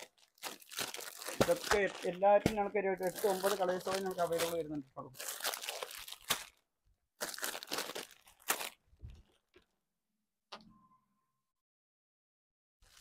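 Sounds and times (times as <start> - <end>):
plastic packets crinkling: 0.0 - 9.7.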